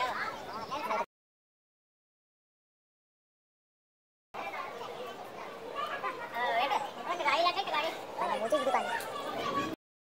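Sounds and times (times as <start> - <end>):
children's voices: 0.0 - 1.1, 4.4 - 9.8
voices talking and calling out: 0.0 - 1.1, 4.4 - 9.8.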